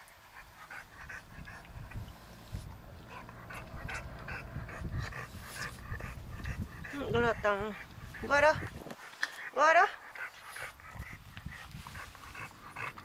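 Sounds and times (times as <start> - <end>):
dog panting: 0.2 - 13.0.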